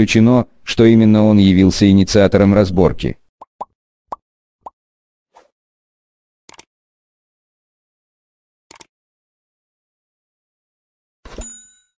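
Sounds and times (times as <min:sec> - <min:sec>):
click: 0:06.5 - 0:06.7
bright bell ding: 0:11.3 - 0:12.0.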